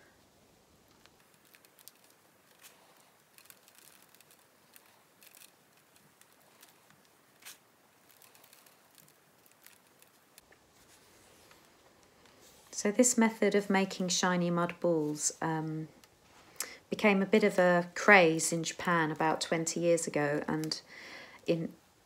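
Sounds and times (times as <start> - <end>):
fingers rubbing dry soil: 1.0 - 11.8.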